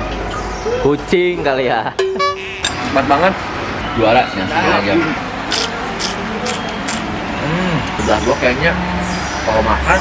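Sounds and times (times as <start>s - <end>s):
person humming: 7.4s - 8.0s.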